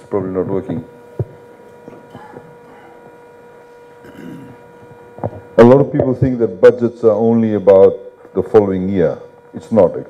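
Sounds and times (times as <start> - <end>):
faint electrical hum: 0.0 - 10.0
low room noise: 0.0 - 10.0.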